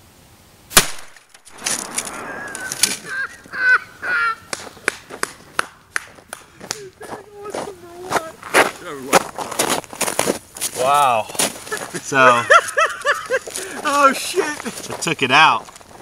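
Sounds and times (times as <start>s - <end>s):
footsteps crunching through snow: 1.5s - 16.0s
people calling out: 2.1s - 4.5s, 6.5s - 8.4s.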